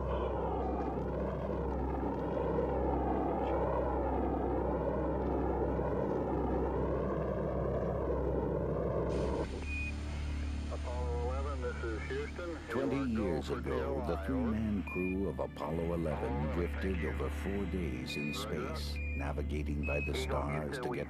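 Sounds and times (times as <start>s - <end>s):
rocket launch roar: 8.9s - 9.7s.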